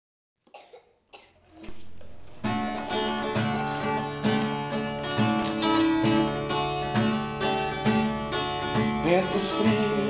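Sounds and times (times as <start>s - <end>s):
child coughing: 0.5s - 1.5s.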